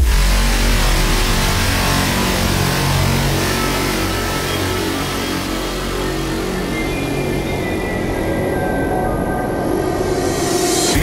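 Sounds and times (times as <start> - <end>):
low drone: 0.0 - 11.0
rushing noise wash: 0.0 - 11.0.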